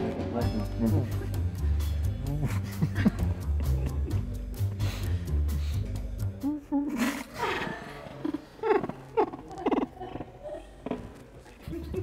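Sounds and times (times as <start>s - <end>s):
background music with a beat: 0.0s - 6.6s.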